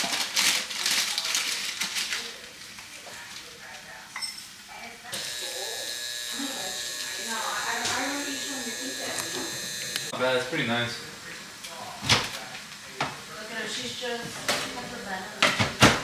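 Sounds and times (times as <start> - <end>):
tap water running: 5.2 - 10.7.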